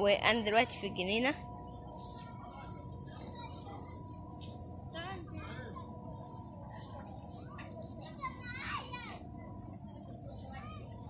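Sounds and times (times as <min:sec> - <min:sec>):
low background noise: 0:00.0 - 0:11.0
faint children's voices: 0:01.3 - 0:11.0.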